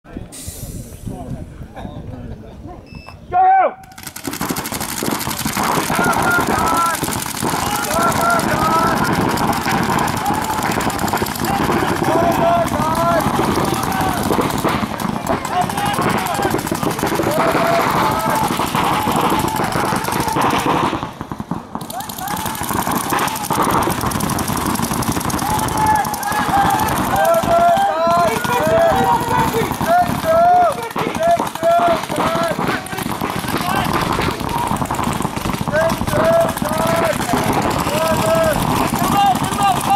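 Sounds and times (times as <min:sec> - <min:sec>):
paintball markers firing: 0:03.8 - 0:39.9.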